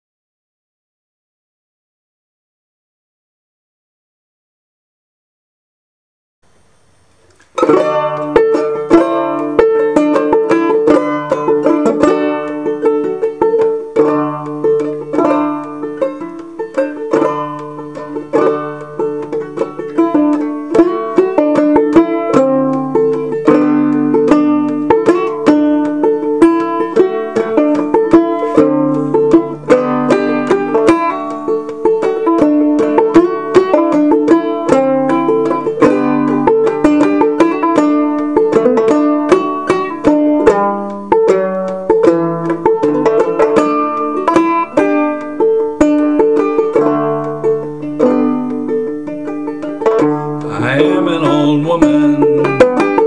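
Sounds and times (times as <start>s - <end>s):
banjo picking melody: 7.4s - 53.0s.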